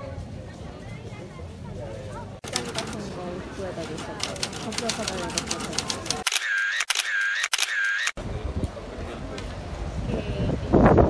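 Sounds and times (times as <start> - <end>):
street chatter: 0.0 - 11.0
street noise: 0.0 - 11.0
typewriter keys clattering: 3.9 - 6.3.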